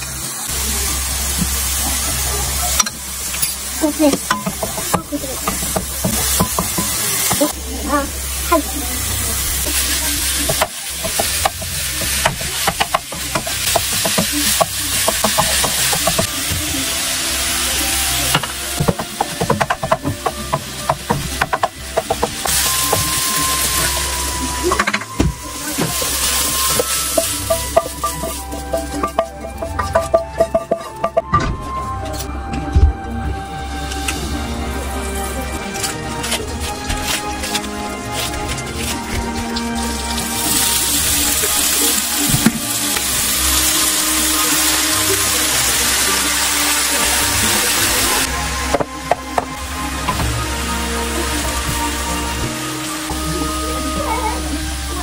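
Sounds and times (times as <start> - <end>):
onions and meat sizzling in a pan: 0.0 - 32.3, 33.4 - 55.0
wooden spatula scraping a pan: 25.6 - 31.3, 35.8 - 40.3.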